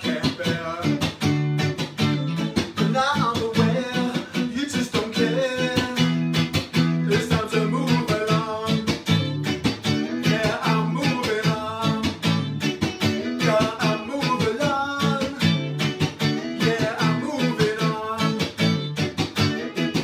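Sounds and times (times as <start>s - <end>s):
man singing: 0.0s - 1.2s, 2.8s - 9.3s, 10.0s - 12.4s, 13.2s - 18.8s
electric guitar strummed: 0.0s - 20.0s.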